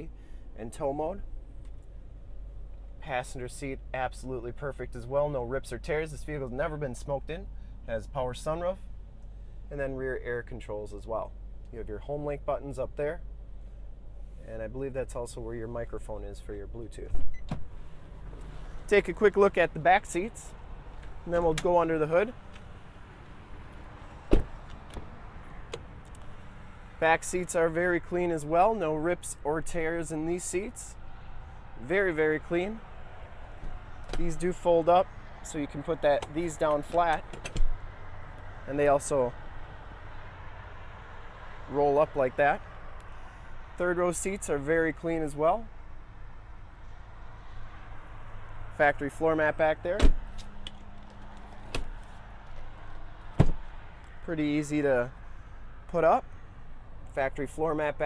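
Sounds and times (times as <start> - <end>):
vehicle door shutting: 17.1 - 18.9, 24.2 - 26.2, 33.6 - 34.4, 36.1 - 37.8, 49.9 - 52.2, 53.3 - 53.7.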